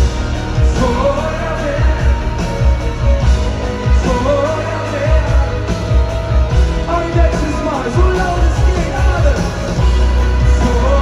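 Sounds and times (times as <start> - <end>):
live pop-rock band: 0.0 - 11.0
person singing: 0.1 - 11.0.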